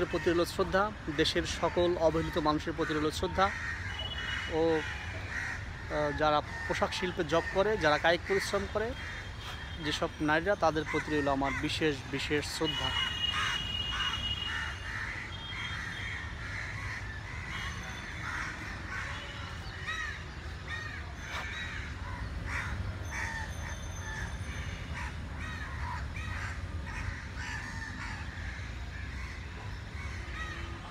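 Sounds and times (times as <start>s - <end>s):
crows cawing: 0.0s - 10.0s, 10.6s - 30.9s.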